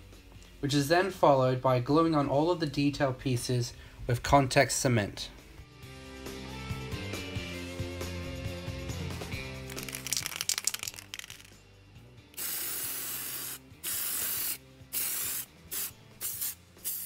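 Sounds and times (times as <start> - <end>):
background music: 0.0 - 17.0
aerosol spray can hissing: 9.7 - 11.5, 12.4 - 17.0.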